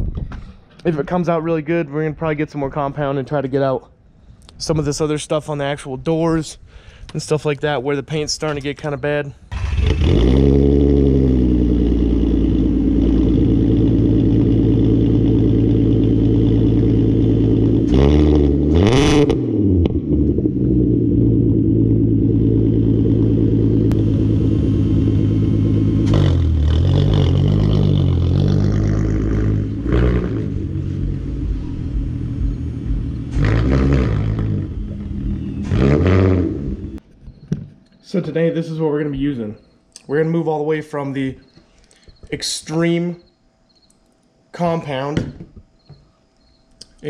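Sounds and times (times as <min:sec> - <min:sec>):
car engine idling and revving: 0:09.5 - 0:37.0.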